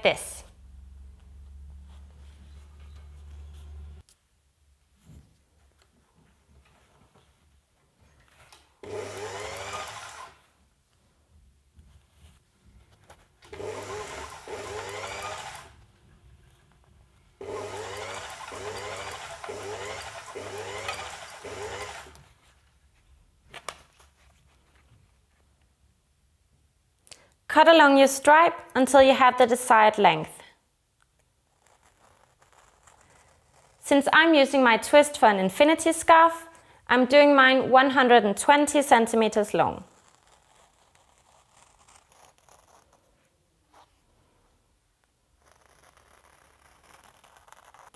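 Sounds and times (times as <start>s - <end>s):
sewing machine motor whining: 8.8s - 10.4s, 13.5s - 15.8s, 17.4s - 22.2s.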